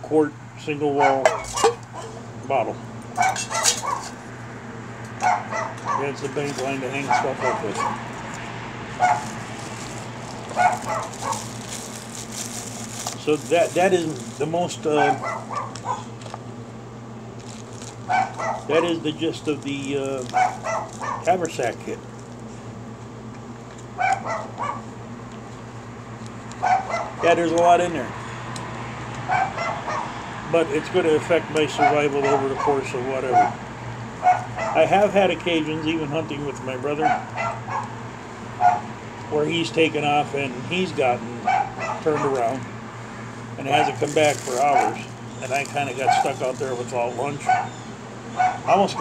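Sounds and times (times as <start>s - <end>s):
dog barking: 1.0s - 2.2s, 3.2s - 4.1s, 5.2s - 6.2s, 7.0s - 8.1s, 9.0s - 9.4s, 10.6s - 11.5s, 15.0s - 16.1s, 18.1s - 18.9s, 20.3s - 21.3s, 24.0s - 24.8s, 26.6s - 27.3s, 29.3s - 30.1s, 31.8s - 33.6s, 34.2s - 34.8s, 37.0s - 37.9s, 38.6s - 38.9s, 41.4s - 42.4s, 47.4s - 47.8s, 48.4s - 49.0s.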